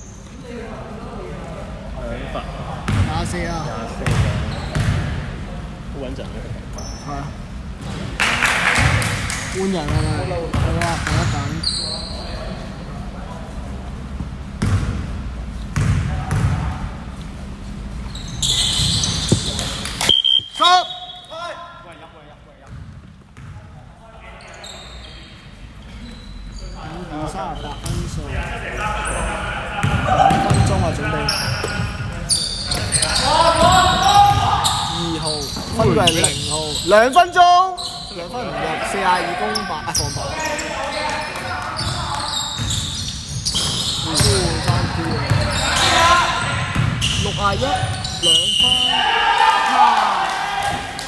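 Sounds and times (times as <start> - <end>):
basketball bouncing on hall floor: 2.9 - 5.2, 7.8 - 11.6, 14.6 - 16.8, 18.1 - 20.3, 22.6 - 23.8, 29.8 - 36.5, 41.1 - 48.4
players' voices and shouts: 26.6 - 42.8, 43.8 - 51.0.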